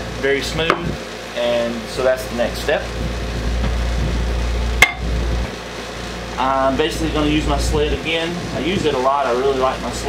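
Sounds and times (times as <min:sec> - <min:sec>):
low rumble: 0:02.9 - 0:05.6.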